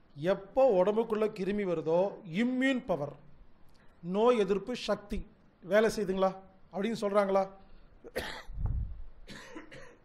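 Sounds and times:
person coughing: 8.0 - 8.6, 9.2 - 10.0.

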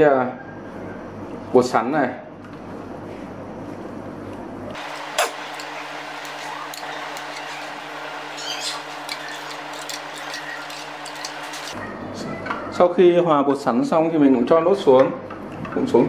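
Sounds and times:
ladle stirring in glass bowl: 4.8 - 11.8.

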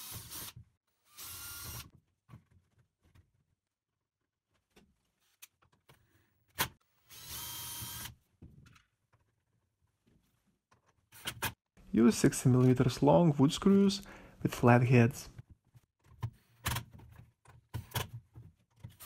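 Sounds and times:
cordless drill drilling plastic: 0.0 - 1.9, 7.1 - 8.1.

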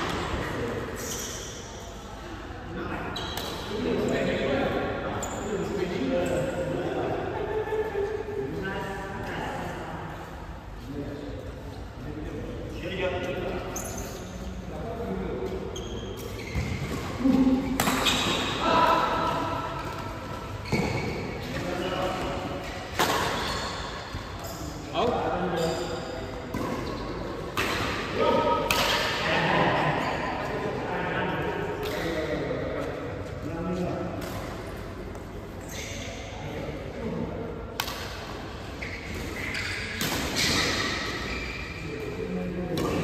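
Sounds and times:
racket hitting shuttlecock: 17.7 - 18.6, 22.9 - 23.8, 27.5 - 29.2, 37.8 - 38.4.

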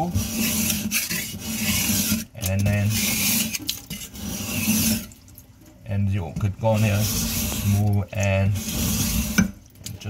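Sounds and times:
knife scraping on sharpening stone: 0.1 - 5.1
water trickling: 0.5 - 10.0.

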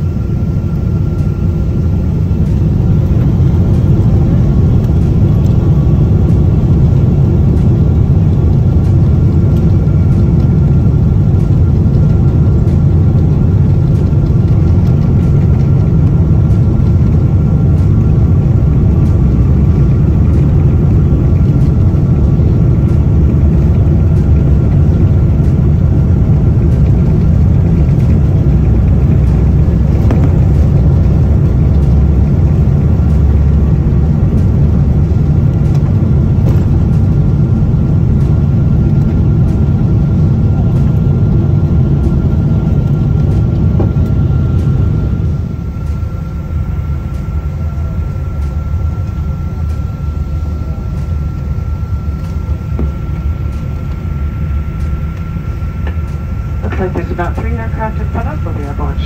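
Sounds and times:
jet engine deep rumble: 0.0 - 59.0
jet engine thin whine: 0.0 - 59.0.

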